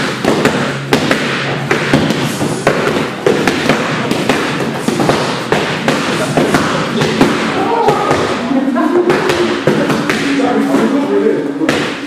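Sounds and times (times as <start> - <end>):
boxing gloves striking focus mitts: 0.0 - 8.4.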